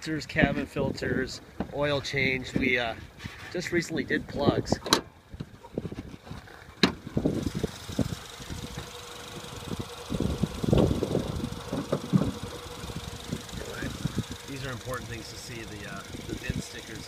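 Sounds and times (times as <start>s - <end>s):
car engine idling: 4.0s - 17.0s
hood latch click: 4.8s - 5.5s.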